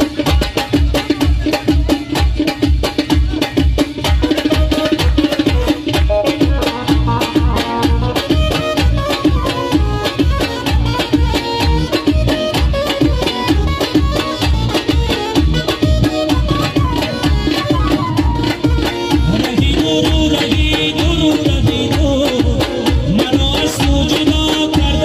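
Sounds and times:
steady drum rhythm: 0:00.0 - 0:25.0
flute: 0:06.1 - 0:20.1.

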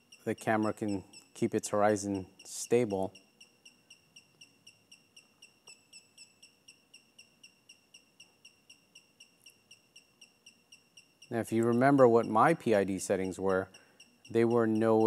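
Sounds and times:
high-pitched motor chirps: 0:00.0 - 0:15.0.

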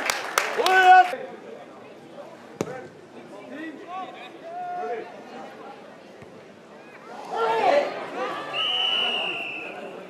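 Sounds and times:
football kick thump: 0:02.6 - 0:02.9.

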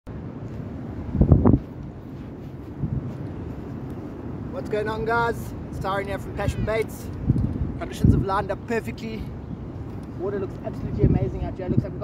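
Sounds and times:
wind buffeting microphone: 0:00.1 - 0:12.0.

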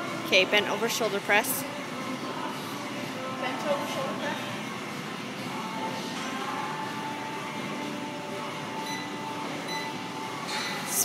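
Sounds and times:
gym room noise: 0:00.0 - 0:11.0
woman speaking: 0:00.3 - 0:01.7.

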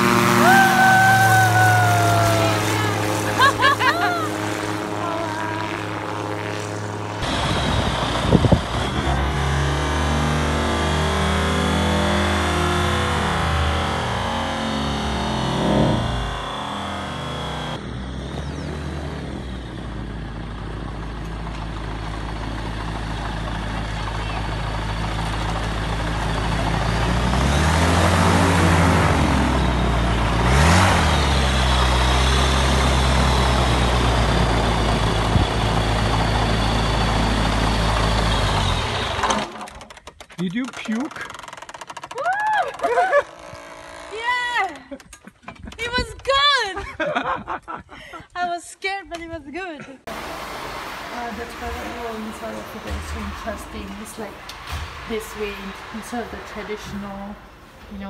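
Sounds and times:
microlight engine and propeller: 0:00.0 - 0:48.4, 0:50.0 - 0:58.0.

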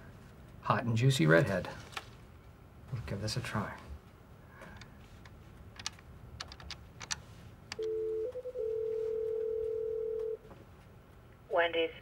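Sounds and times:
telephone ringing tone: 0:07.8 - 0:10.4.

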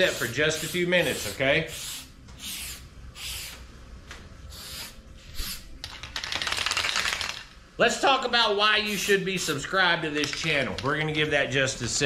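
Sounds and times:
aerosol can spraying: 0:00.0 - 0:03.6, 0:04.5 - 0:05.6, 0:08.9 - 0:09.6
aerosol can rattling: 0:05.8 - 0:07.5.

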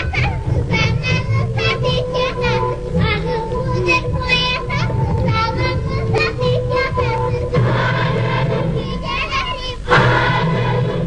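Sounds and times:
child singing: 0:00.0 - 0:10.8
instrumental accompaniment: 0:00.0 - 0:11.0.

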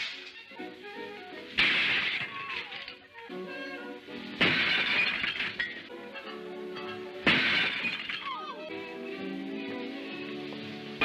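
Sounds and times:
background music: 0:00.0 - 0:11.0
window glass smashing: 0:01.5 - 0:03.1, 0:04.2 - 0:08.5.

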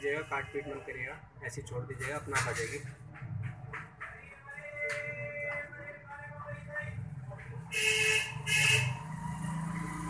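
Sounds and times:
vehicle horn honks: 0:07.7 - 0:09.0.

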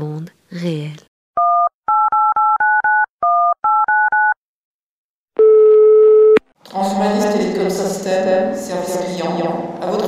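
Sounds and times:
telephone keypad touch-tones: 0:01.4 - 0:04.4
telephone ringing tone: 0:01.4 - 0:04.4, 0:05.4 - 0:06.4.

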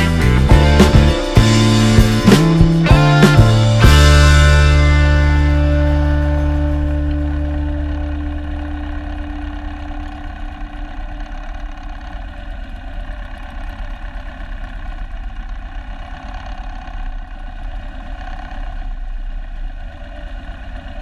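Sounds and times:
background music: 0:00.0 - 0:10.5
motorcycle engine idling: 0:00.0 - 0:21.0.

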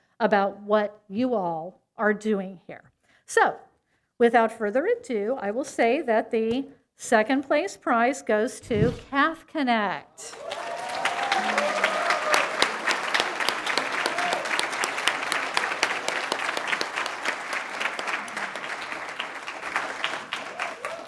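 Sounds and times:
audience applauding: 0:10.2 - 0:21.0.

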